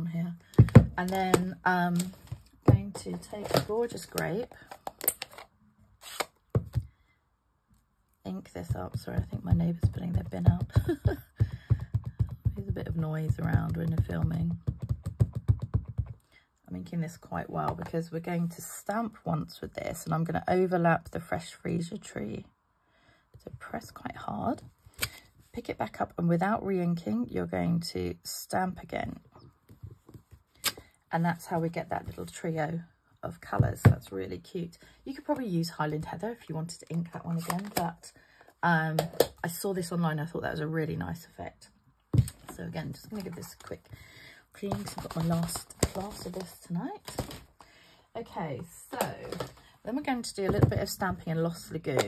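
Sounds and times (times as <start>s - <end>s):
dull thumps: 0.5s - 1.6s, 2.6s - 3.8s, 8.6s - 16.2s, 50.4s - 51.2s.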